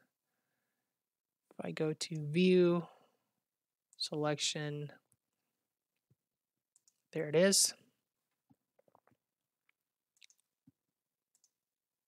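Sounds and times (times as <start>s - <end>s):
faint computer mouse clicks: 6.8s - 7.0s, 10.2s - 10.5s, 11.3s - 11.6s.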